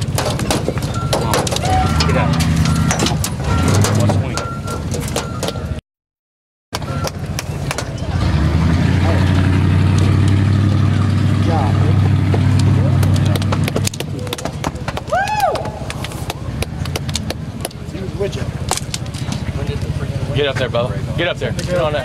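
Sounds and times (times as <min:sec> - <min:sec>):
voices: 0:00.2 - 0:05.8, 0:06.8 - 0:22.0
vehicle engine idling: 0:06.8 - 0:22.0
rising and falling whoop: 0:15.1 - 0:16.0.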